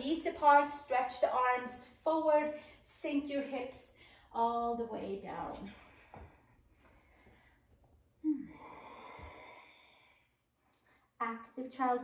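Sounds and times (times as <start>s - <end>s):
woman sighing: 8.2s - 9.2s.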